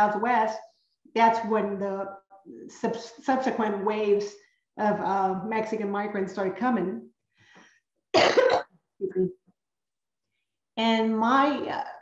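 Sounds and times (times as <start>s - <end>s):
woman coughing: 8.2s - 8.6s.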